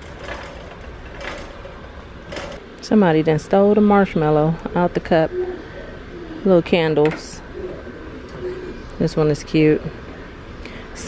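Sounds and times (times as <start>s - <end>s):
shopping cart wheels rattling: 0.0s - 2.6s
low background noise: 0.0s - 11.0s.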